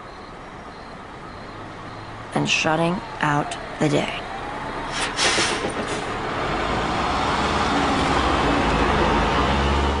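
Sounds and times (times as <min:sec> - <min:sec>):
motor vehicle rumble: 0:00.0 - 0:10.0.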